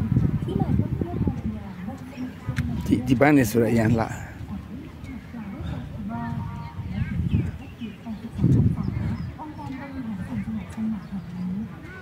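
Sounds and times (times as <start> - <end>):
people talking in background: 0.0 - 12.0.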